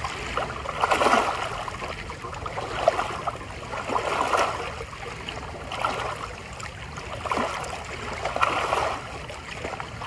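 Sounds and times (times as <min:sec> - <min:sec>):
water lapping against rocks: 0:00.0 - 0:10.0.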